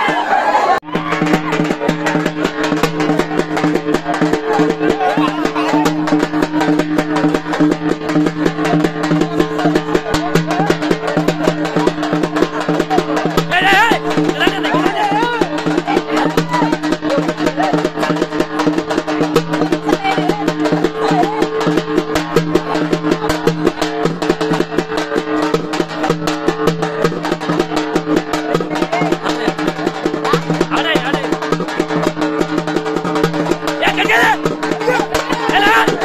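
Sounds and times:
fast busy drumming: 0:00.0 - 0:36.0.

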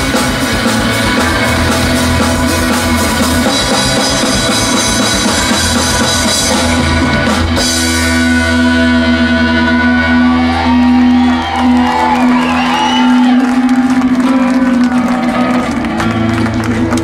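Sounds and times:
bass guitar: 0:00.0 - 0:17.0
bending guitar line: 0:00.0 - 0:17.0
rock band playing: 0:00.0 - 0:17.0.

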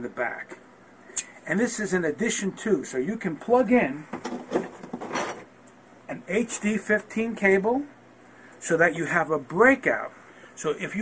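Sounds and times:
cable rustling scrape: 0:04.2 - 0:05.5.

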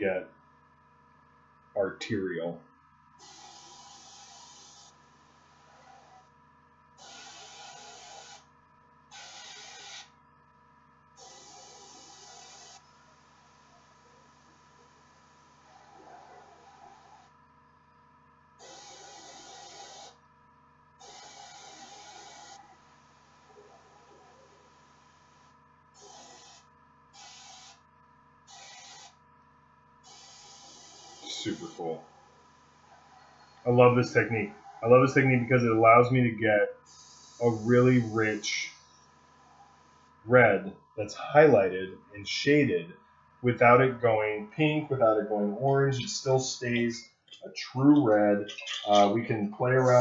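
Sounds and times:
faint steady hum: 0:00.0 - 0:50.0
airbrush hissing spray bursts: 0:03.2 - 0:05.0, 0:07.0 - 0:08.4, 0:09.1 - 0:10.1, 0:11.2 - 0:12.8, 0:18.6 - 0:20.2, 0:21.0 - 0:22.6, 0:27.2 - 0:27.8, 0:28.5 - 0:29.1, 0:30.1 - 0:31.7, 0:36.9 - 0:38.4.

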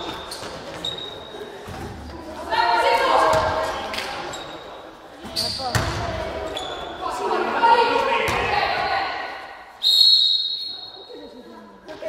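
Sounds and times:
referee's whistle blast: 0:09.8 - 0:11.0.

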